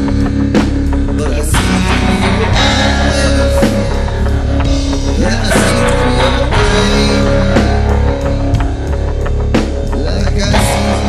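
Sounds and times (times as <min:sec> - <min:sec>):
drum kit playing steady beat: 0:00.0 - 0:11.0
electric guitar: 0:00.0 - 0:11.0.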